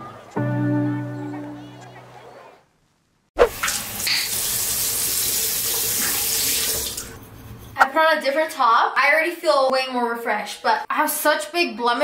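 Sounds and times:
faucet running into sink: 0:03.5 - 0:07.2.

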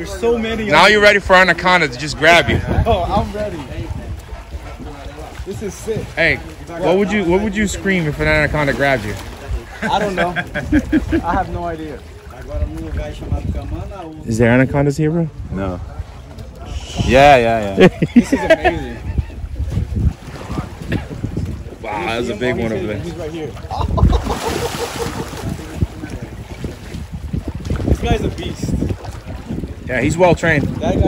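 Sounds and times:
quiet voices talking: 0:00.0 - 0:31.0
water sloshing and lapping: 0:00.0 - 0:31.0
wind rumbling on microphone: 0:00.0 - 0:31.0
dolphin splashing water: 0:23.4 - 0:31.0.

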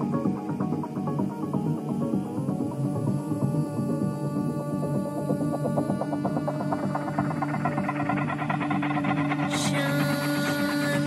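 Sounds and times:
fast pulsing synth pattern: 0:00.0 - 0:11.0
low synth drone: 0:00.0 - 0:11.0.

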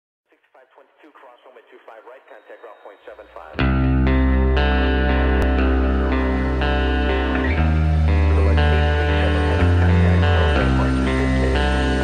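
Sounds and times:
echoing electric guitars: 0:02.7 - 0:12.0
held bass notes: 0:03.6 - 0:12.0.

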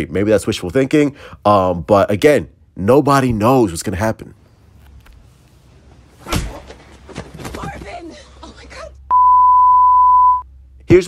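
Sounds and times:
steady pure test tone beep: 0:09.1 - 0:10.5.

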